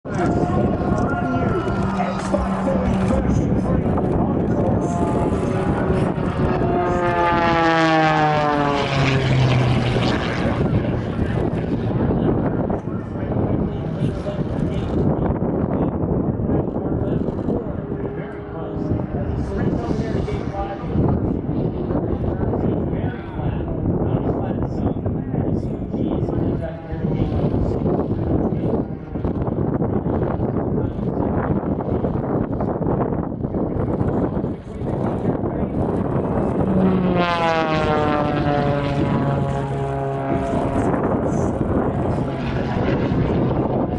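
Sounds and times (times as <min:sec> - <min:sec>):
wind buffeting microphone: 0:00.0 - 0:43.9
propeller plane engine passing: 0:00.1 - 0:43.9.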